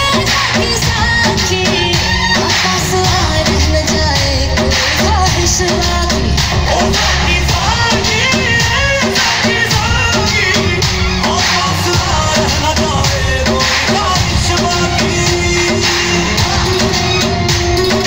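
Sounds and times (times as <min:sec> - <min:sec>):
pop dance song with singing: 0:00.0 - 0:18.0.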